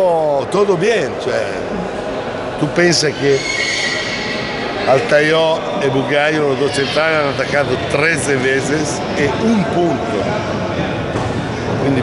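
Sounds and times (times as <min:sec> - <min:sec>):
indistinct background chatter: 0:00.0 - 0:12.0.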